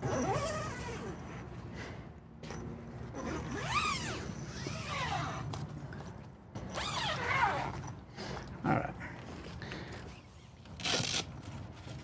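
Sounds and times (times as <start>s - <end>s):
zipper on mesh screen: 0.0s - 1.2s, 3.1s - 5.5s, 6.7s - 7.9s.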